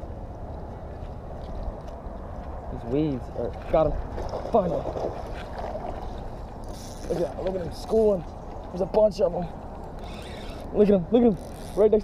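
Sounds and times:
water against boat hull: 0:03.4 - 0:12.0.

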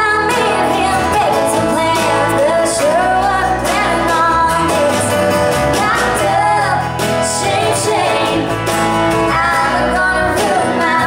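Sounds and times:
strummed acoustic guitar: 0:00.0 - 0:11.0
woman singing country song: 0:00.0 - 0:11.0.

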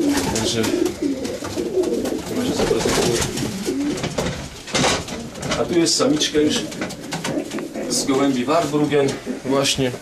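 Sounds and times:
pigeons cooing: 0:00.0 - 0:09.8.

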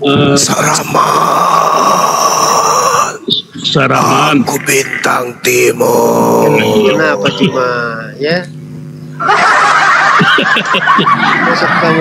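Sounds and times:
person laughing loudly: 0:07.0 - 0:07.7, 0:09.2 - 0:12.0.

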